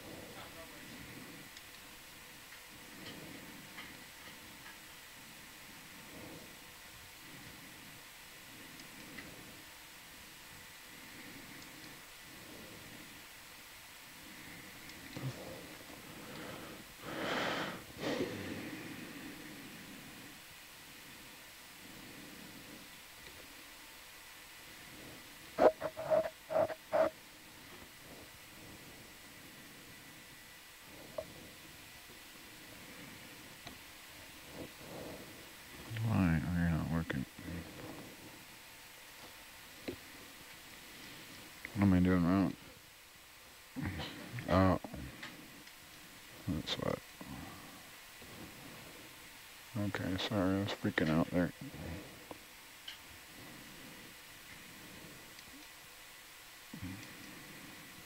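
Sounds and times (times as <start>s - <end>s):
intercom channel hiss: 25.6s - 27.1s.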